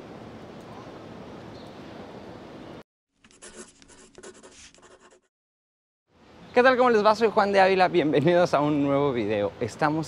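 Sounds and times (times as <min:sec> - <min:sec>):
pen scratching on paper: 0:03.2 - 0:05.3.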